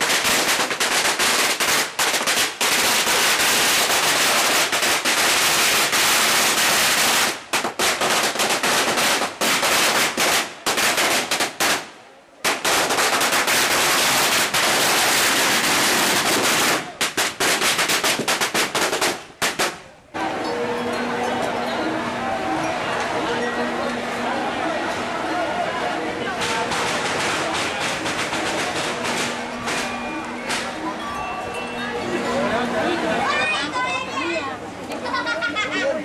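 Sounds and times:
firecrackers crackling: 0:00.0 - 0:20.5, 0:26.0 - 0:31.0.

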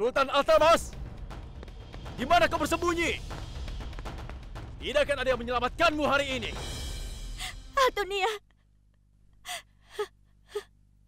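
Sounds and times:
woman sobbing: 0:07.4 - 0:08.7, 0:09.4 - 0:10.8.

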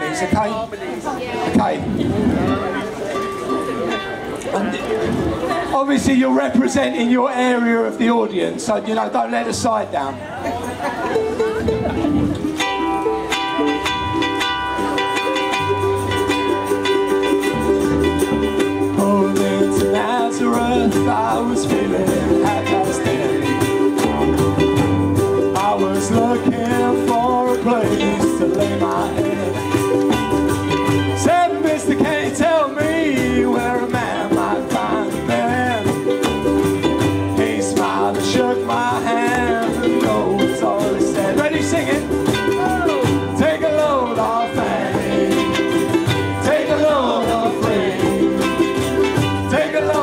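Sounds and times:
ukulele group strumming: 0:00.0 - 0:50.0
group singing through a pa: 0:18.8 - 0:24.3, 0:25.4 - 0:30.1, 0:31.2 - 0:36.2, 0:37.1 - 0:50.0.

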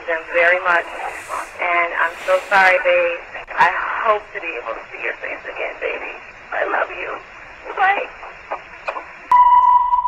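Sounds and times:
telephone line hiss: 0:00.0 - 0:08.6.

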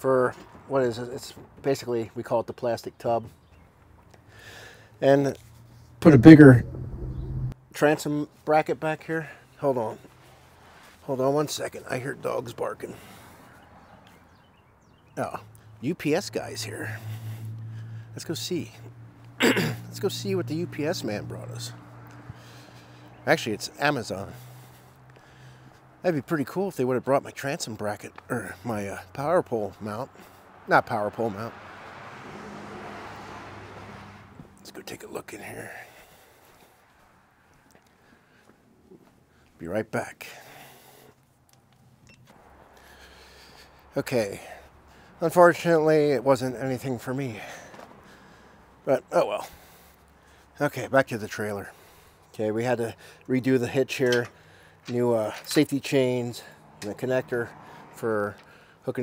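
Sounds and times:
quiet outdoor background noise: 0:00.0 - 0:59.0.

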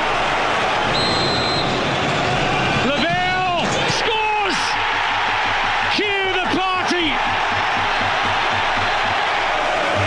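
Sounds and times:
large stadium crowd: 0:00.0 - 0:10.0
short high whistle: 0:01.0 - 0:01.7.

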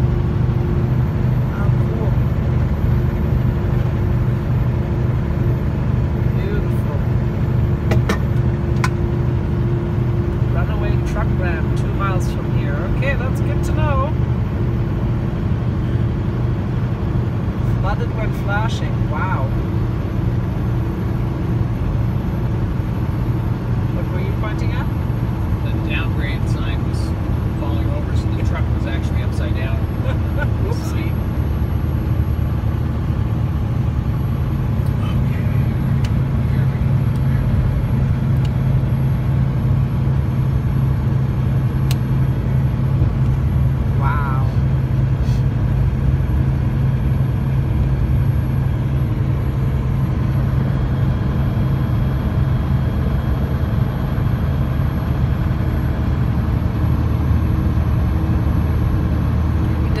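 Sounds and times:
road noise: 0:00.0 - 1:00.0
truck engine drone: 0:00.0 - 1:00.0.

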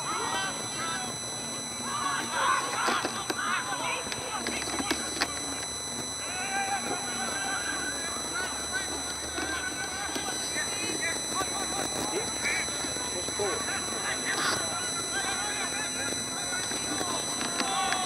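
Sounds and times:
faint high whine: 0:00.0 - 0:18.0
voices shouting and calling: 0:00.0 - 0:18.0.

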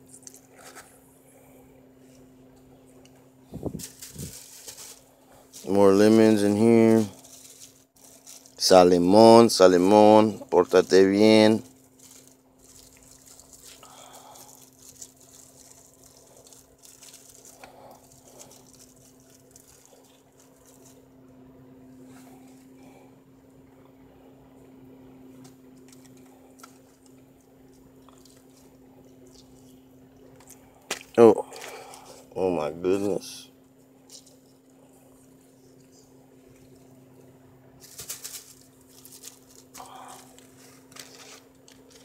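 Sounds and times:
low hum: 0:00.0 - 0:32.8
plastic bag crinkling: 0:03.5 - 0:21.2, 0:25.8 - 0:32.2, 0:37.8 - 0:42.0.

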